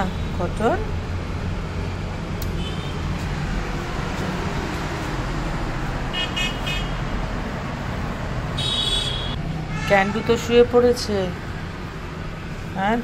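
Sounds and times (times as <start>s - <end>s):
city street traffic: 0.0s - 13.0s
car horn toots: 8.6s - 10.4s.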